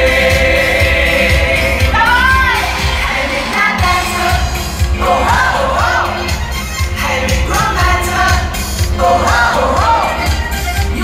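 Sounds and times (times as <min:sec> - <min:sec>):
euro-disco song with voices: 0:00.0 - 0:11.0.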